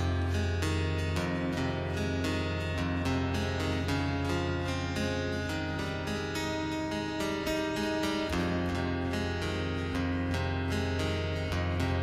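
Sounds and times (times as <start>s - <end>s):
acoustic guitar plucked notes: 0.0s - 12.0s.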